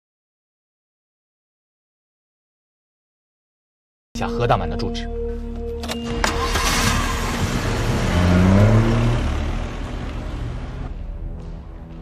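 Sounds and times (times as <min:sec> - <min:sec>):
dramatic background music: 0:04.2 - 0:12.0
car engine revving: 0:06.0 - 0:11.0.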